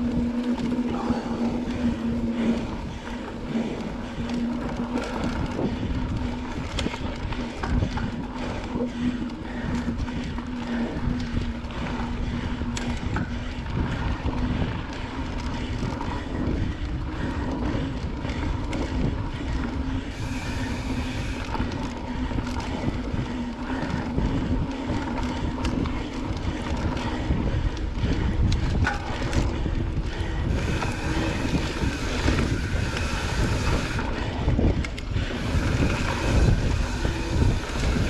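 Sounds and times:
bike clicks and rattles: 0.0s - 38.0s
bike tyres on dirt: 0.0s - 38.0s
wind buffeting microphone: 0.0s - 38.0s.

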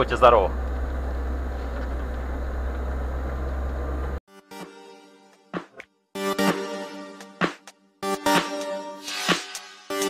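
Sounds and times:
car engine rumbling inside cabin: 0.0s - 4.2s.

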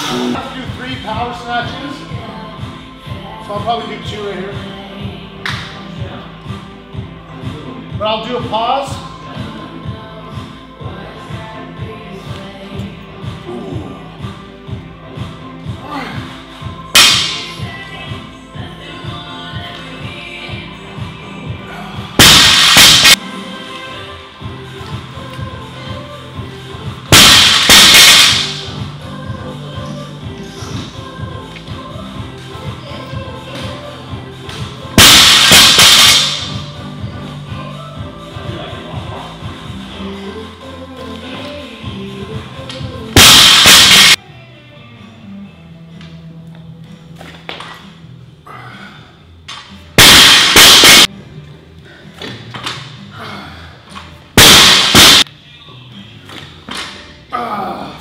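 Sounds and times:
background music: 0.0s - 58.0s.

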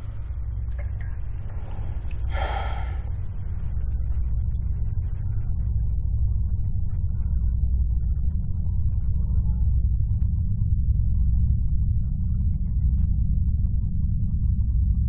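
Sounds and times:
low rumbling drone: 0.0s - 15.0s
short gasp: 2.3s - 3.1s.

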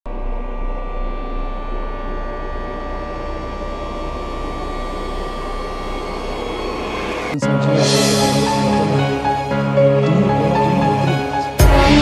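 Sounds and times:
drama title music: 0.1s - 12.0s.

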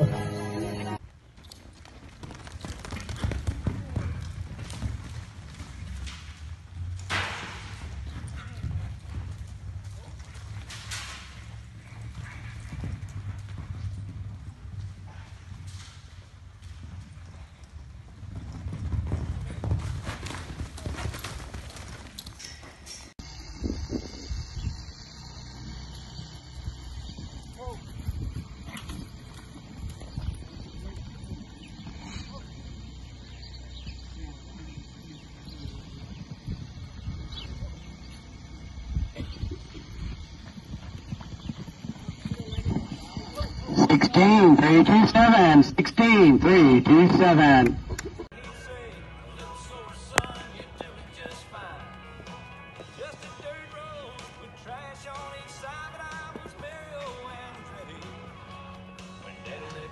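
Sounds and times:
horse hoofbeats galloping on dirt: 0.0s - 45.7s, 49.4s - 59.9s.

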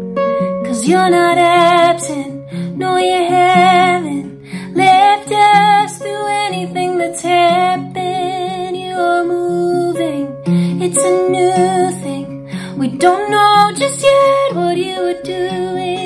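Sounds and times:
guitar accompaniment: 0.0s - 16.0s
woman singing slow song: 0.5s - 16.0s.

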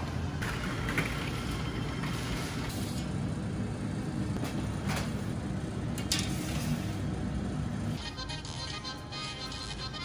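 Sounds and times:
low mechanical rumble of equipment: 0.0s - 10.0s.

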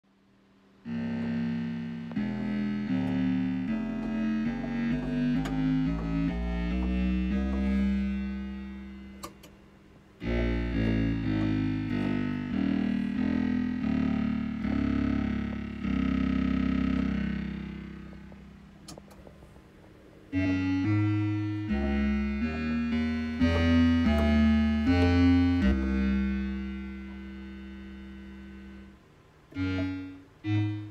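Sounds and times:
synthesizer bass notes: 0.8s - 19.3s, 20.3s - 30.9s.

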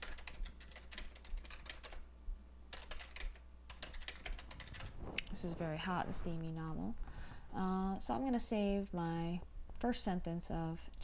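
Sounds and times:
computer keyboard typing: 0.0s - 2.0s, 2.7s - 5.0s.

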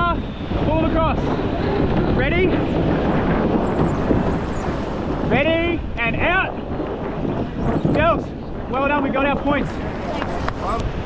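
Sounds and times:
surf foaming around boat hull: 0.0s - 11.0s
wind rumble on microphone: 0.0s - 11.0s.

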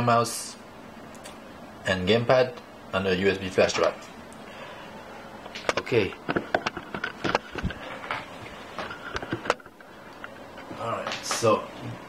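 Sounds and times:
objects clicking and knocking: 5.5s - 10.3s.

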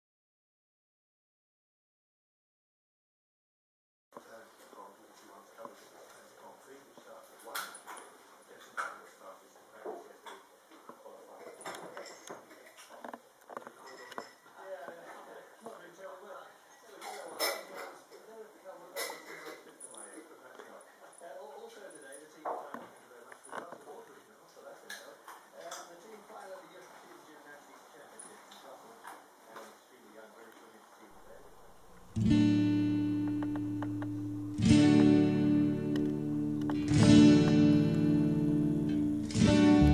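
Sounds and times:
low room murmur: 4.2s - 39.9s.

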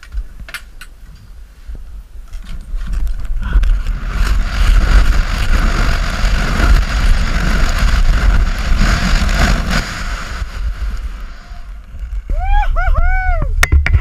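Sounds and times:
wind buffeting microphone: 0.0s - 14.0s
skis carving on snow: 2.4s - 12.6s.

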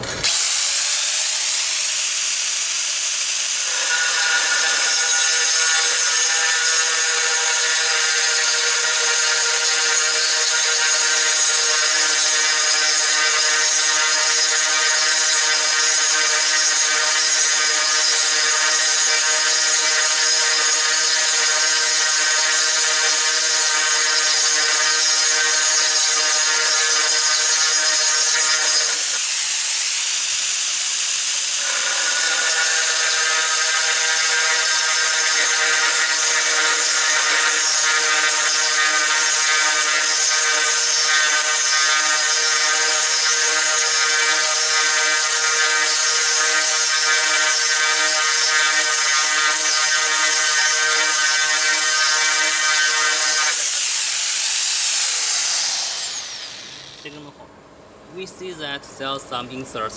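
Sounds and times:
drill bit grinding tile: 0.0s - 57.2s
angle grinder motor whine: 0.0s - 57.3s.

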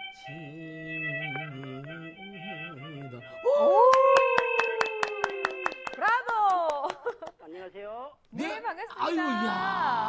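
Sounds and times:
people clapping: 3.6s - 7.4s.

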